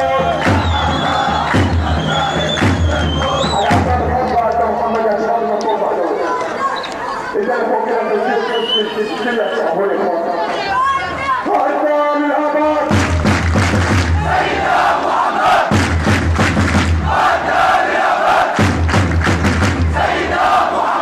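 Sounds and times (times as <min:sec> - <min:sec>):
crowd chanting in unison: 0:00.0 - 0:03.8, 0:13.8 - 0:18.9, 0:19.6 - 0:21.0.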